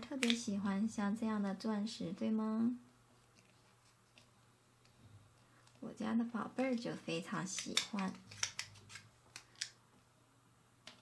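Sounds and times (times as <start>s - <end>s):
clicks of gem stickers handled: 7.4s - 9.8s.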